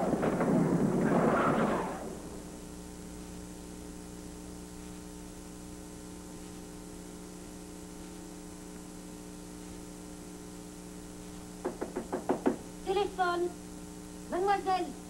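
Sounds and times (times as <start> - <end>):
steady electrical hum: 0.0 - 15.0
rapid knocking on a door: 11.6 - 12.6.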